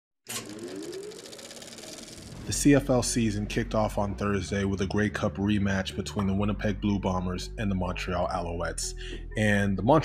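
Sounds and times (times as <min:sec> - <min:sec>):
slowly rising tone: 0:00.3 - 0:03.3
fast pulsing texture: 0:00.3 - 0:04.2.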